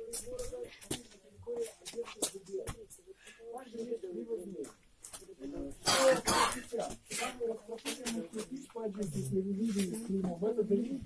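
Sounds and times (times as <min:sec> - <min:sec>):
quiet voices: 0:00.0 - 0:11.0
person coughing: 0:05.8 - 0:06.8.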